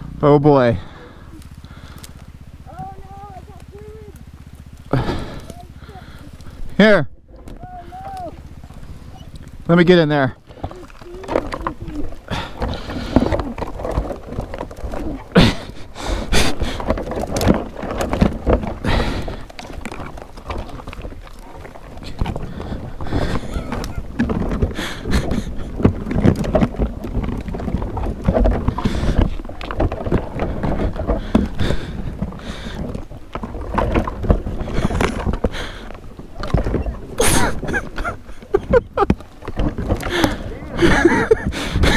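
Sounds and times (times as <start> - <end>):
branches crackling and snapping: 0.8 - 41.9
knocks and rustles: 10.4 - 41.9.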